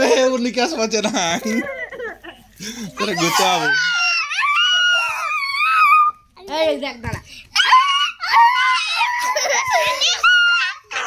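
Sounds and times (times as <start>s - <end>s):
child wailing: 3.0s - 6.2s, 7.6s - 11.0s.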